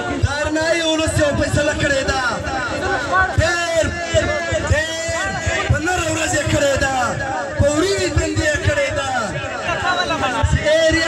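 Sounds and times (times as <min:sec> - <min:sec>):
man singing through loudspeakers: 0:00.0 - 0:11.0.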